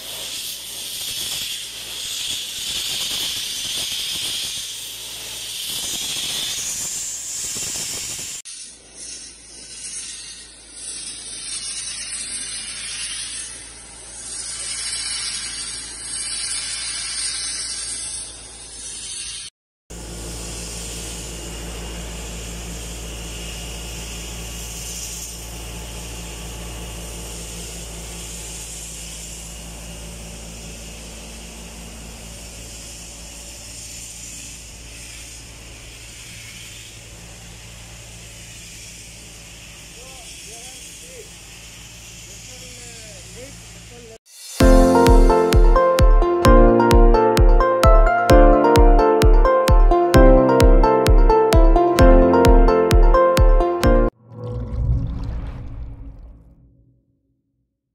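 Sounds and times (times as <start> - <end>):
sandblasting hiss: 0.0 - 45.9.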